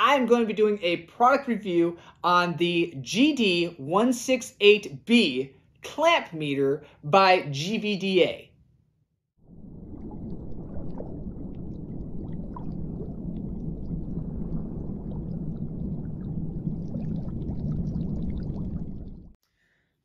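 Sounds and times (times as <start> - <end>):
underwater rumble: 9.4 - 19.4
small bubbling pops: 9.9 - 19.4.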